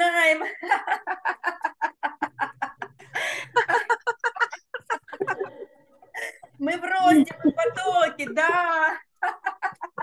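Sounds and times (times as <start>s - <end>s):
woman laughing loudly: 7.0s - 10.0s.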